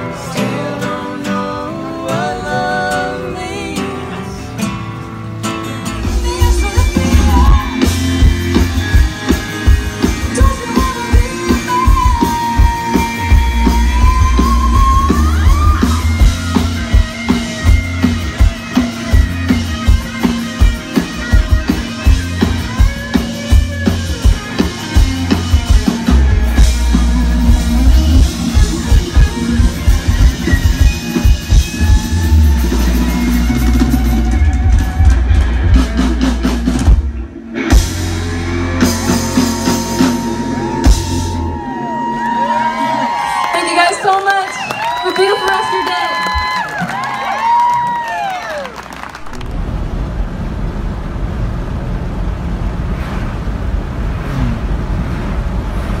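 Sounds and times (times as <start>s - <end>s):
rock band playing loud: 0.0s - 48.0s
vehicle road and engine rumble: 48.8s - 56.0s.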